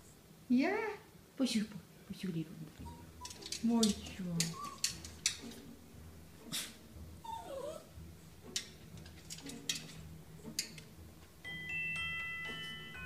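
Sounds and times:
dog whimpering: 0:02.8 - 0:03.5, 0:04.4 - 0:05.1, 0:06.5 - 0:08.0
paws tapping on a mirror: 0:02.8 - 0:05.6.

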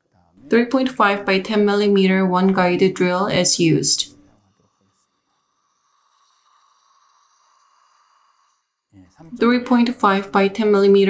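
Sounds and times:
person speaking: 0:00.4 - 0:04.3, 0:09.2 - 0:11.0.

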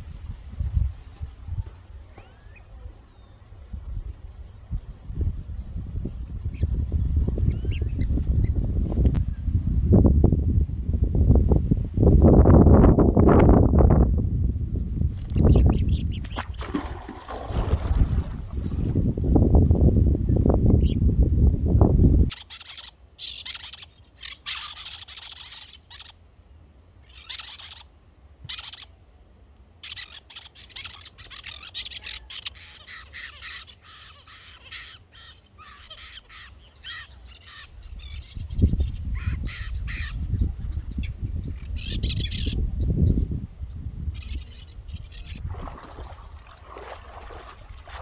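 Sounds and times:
wind rumble on microphone: 0:00.0 - 0:22.4, 0:37.5 - 0:48.0
birds calling: 0:06.4 - 0:08.7, 0:15.3 - 0:17.4, 0:22.3 - 0:26.3, 0:27.0 - 0:29.0, 0:29.8 - 0:48.0.

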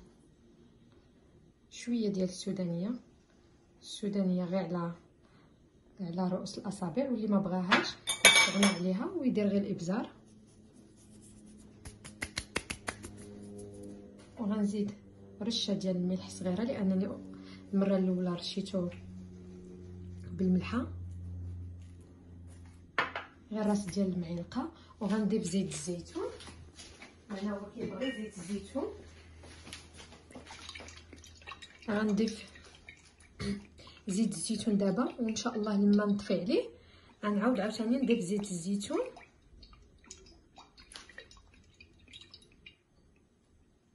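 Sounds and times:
faint low hum: 0:00.0 - 0:43.9.

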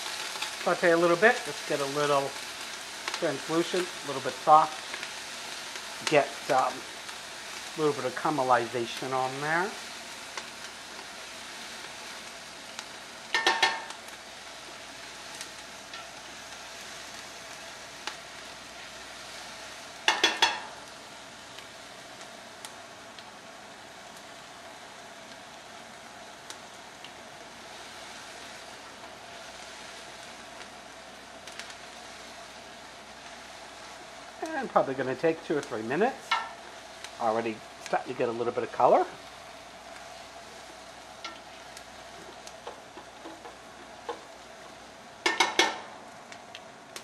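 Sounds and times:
onions sizzling in a pot: 0:00.0 - 0:47.0
knocks against a pot: 0:13.4 - 0:13.9, 0:45.3 - 0:45.9.

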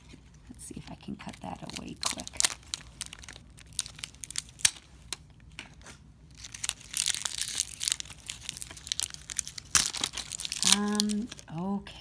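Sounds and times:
clicks and crackles: 0:00.0 - 0:11.5
plastic wrap crinkling and tearing: 0:00.0 - 0:11.6.

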